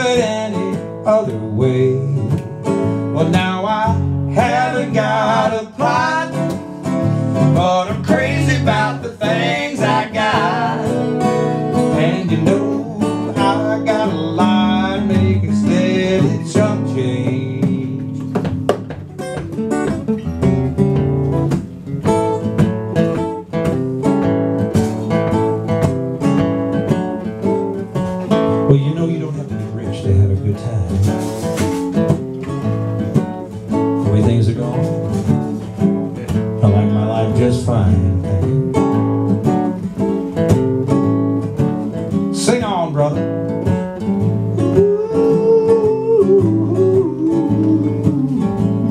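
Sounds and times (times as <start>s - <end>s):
acoustic guitars playing: 0.0s - 48.9s.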